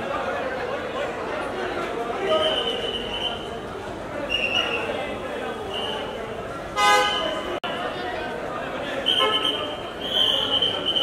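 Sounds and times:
crowd chatter: 0.0s - 11.0s
vehicle horn toot: 6.8s - 7.4s, 9.1s - 10.8s.

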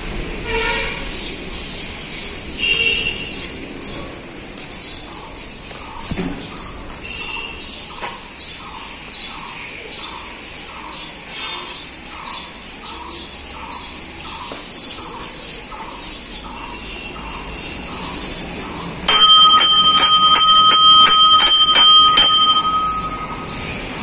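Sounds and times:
brass temple bell ringing: 19.1s - 24.0s.

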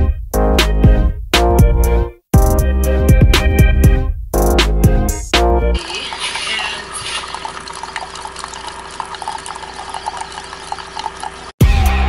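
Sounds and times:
background music with beat: 0.0s - 5.8s, 11.6s - 12.0s
coffee maker humming: 5.8s - 11.6s
coffee pouring into mug: 5.8s - 11.6s.

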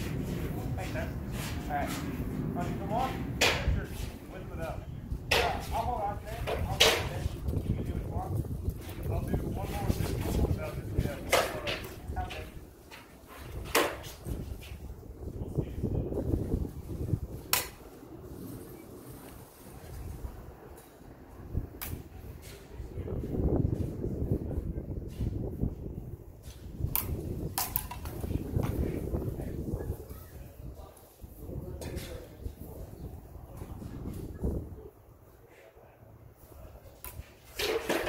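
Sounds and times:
wind rumble on microphone: 0.0s - 35.2s.

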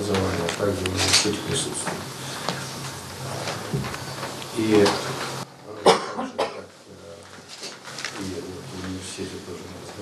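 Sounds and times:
man coughing: 5.8s - 6.7s.

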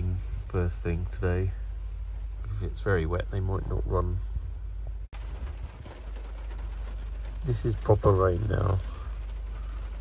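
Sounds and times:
heavy rain on vehicle roof: 5.1s - 10.0s.

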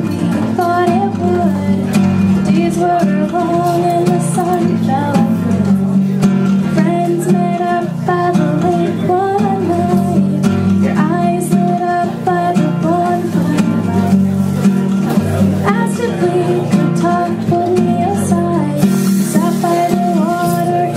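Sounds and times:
woman singing: 0.0s - 14.3s, 15.6s - 20.9s
classical guitar strumming: 0.0s - 20.9s.

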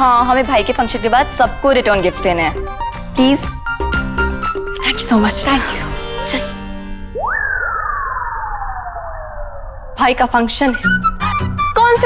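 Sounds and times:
comic descending whistle: 4.8s - 11.8s.

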